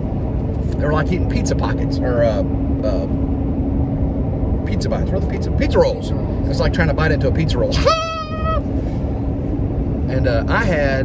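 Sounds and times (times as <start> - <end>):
road hum inside vehicle: 0.0 - 11.0
man's high-pitched cry: 7.7 - 8.8.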